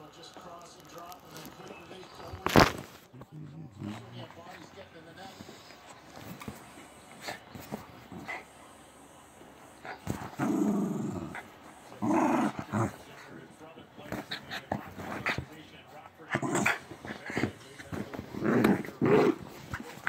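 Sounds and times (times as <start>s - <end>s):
small dog growling: 9.7s - 13.3s, 16.3s - 20.0s.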